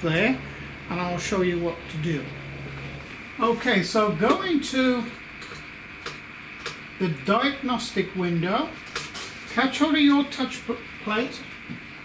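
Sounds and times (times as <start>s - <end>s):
faint high whine: 0.0s - 5.6s.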